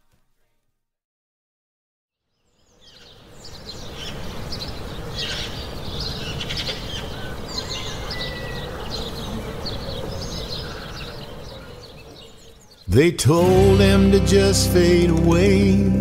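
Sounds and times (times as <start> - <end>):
birds chirping and calling: 2.4 - 13.1.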